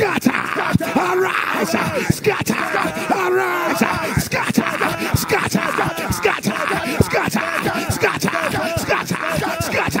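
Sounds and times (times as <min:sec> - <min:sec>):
man praying rapidly: 0:00.0 - 0:10.0.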